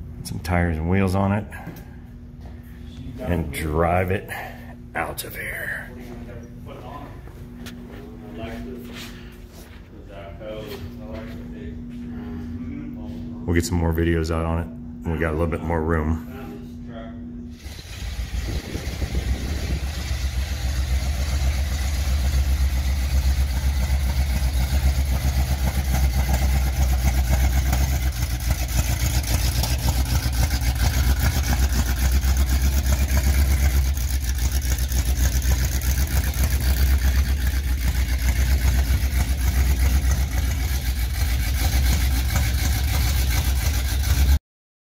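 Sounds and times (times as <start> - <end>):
pickup truck engine running: 17.6 - 44.4.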